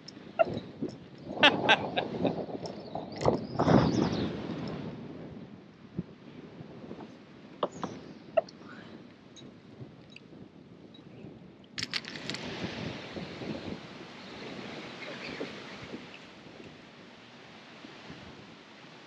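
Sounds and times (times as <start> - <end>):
wind buffeting microphone: 0.0 - 19.0.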